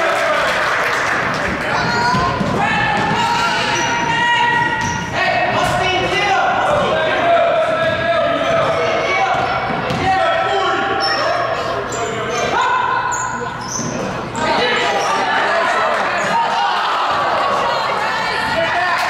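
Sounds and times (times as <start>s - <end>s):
voices echoing in hall: 0.0s - 19.0s
basketball bouncing on hardwood: 1.8s - 3.2s, 9.3s - 10.1s
shoes squeaking: 1.8s - 5.2s, 10.7s - 15.3s.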